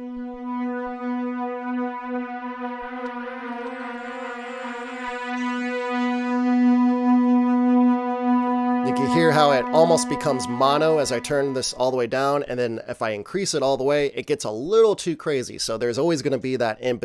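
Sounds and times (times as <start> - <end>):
sustained low synthesizer pad: 0.0 - 12.0.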